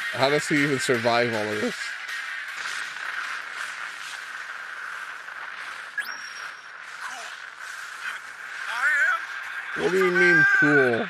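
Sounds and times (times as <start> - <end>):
rushing fire: 0.0 - 11.0.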